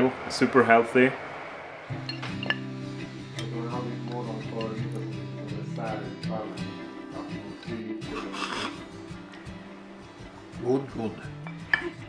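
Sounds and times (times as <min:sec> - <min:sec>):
soft background music: 0:01.9 - 0:12.0.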